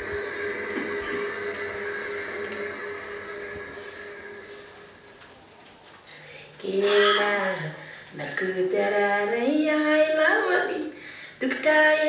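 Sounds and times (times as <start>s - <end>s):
steady hum: 0.0s - 11.5s.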